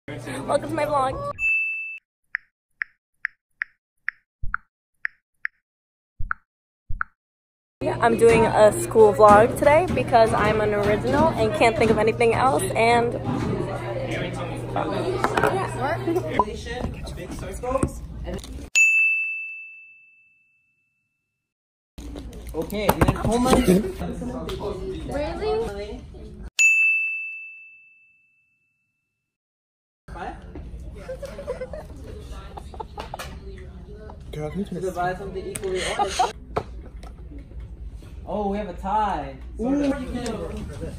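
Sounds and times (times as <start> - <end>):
bright bell-like ding: 1.4 - 2.0, 18.8 - 20.4, 26.6 - 28.4
woman's voice: 7.8 - 13.2.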